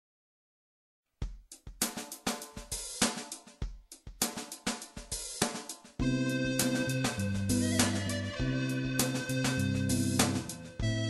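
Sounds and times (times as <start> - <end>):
drum kit bossa nova groove: 1.2 - 11.0.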